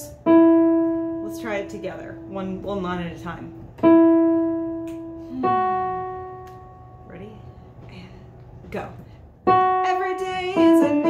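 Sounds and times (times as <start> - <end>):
keyboard notes: 0.0 - 7.5.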